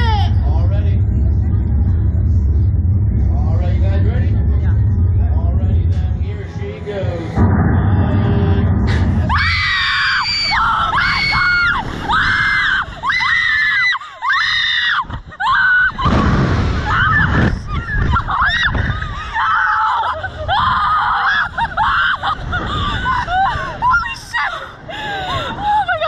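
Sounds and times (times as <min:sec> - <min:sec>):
low rumble: 0:00.0 - 0:26.0.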